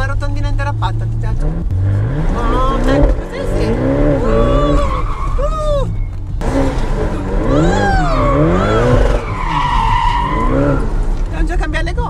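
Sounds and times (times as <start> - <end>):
car engine drone: 0.0 - 12.0
tyres squealing: 2.3 - 11.4.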